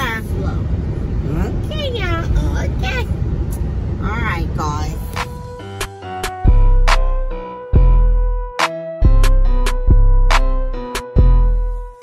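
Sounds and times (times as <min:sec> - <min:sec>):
vehicle road and engine rumble: 0:00.0 - 0:07.3.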